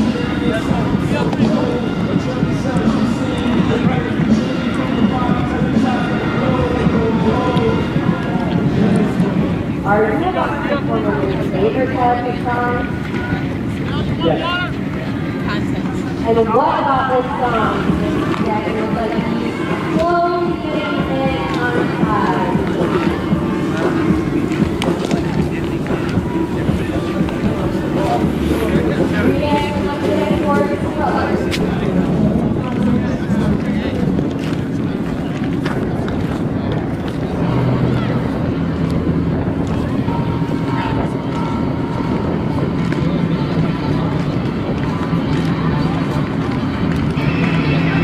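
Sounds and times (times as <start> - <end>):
men talking and calling out: 0.0 - 48.0
wind buffeting microphone: 0.0 - 48.0.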